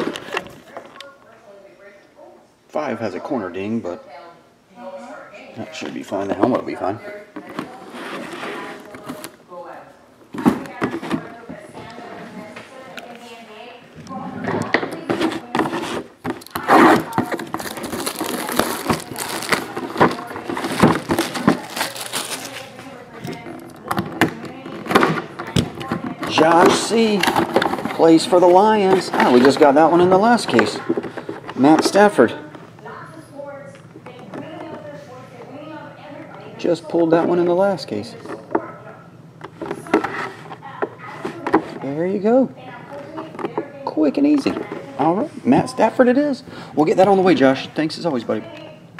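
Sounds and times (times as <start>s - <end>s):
background talk: 0.0s - 48.9s
plastic shrink wrap crinkling: 15.0s - 24.7s
shrink wrap being torn: 16.4s - 22.8s.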